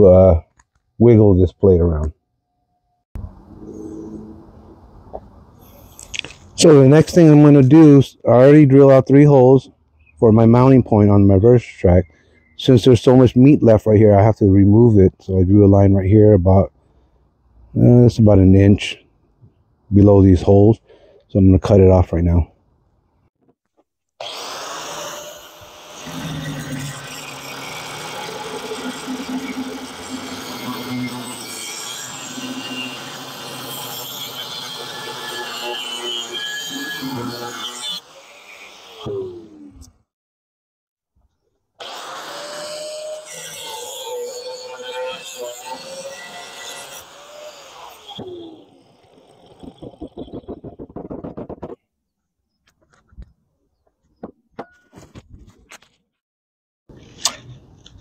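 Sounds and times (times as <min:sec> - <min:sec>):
angle grinder cutting steel: 0:24.2 - 0:39.4, 0:41.8 - 0:50.8.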